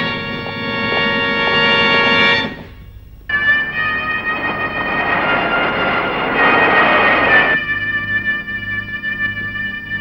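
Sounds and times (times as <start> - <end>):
background music held notes: 0.0 - 10.0
car driving past: 3.3 - 7.6.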